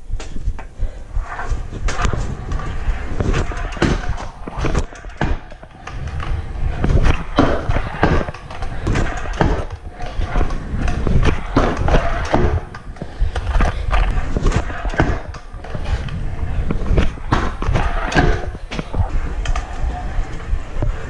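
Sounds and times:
scooter wheels rolling on concrete: 0:00.2 - 0:21.0
scooter deck clacks and thuds: 0:01.8 - 0:19.8.

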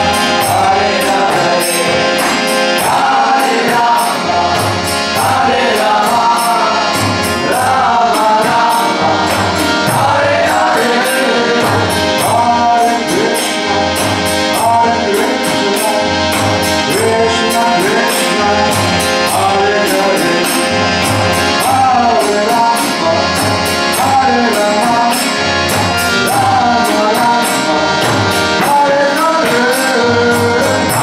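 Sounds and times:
harmonium chords: 0:00.0 - 0:31.0
high percussion strikes: 0:00.0 - 0:31.0
person singing: 0:00.0 - 0:31.0.

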